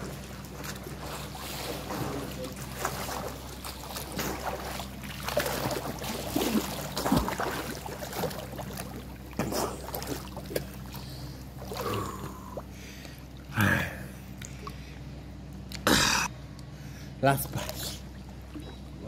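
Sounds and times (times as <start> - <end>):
swimmer splashing water: 0.0 - 14.9
steady low hum: 0.0 - 19.0.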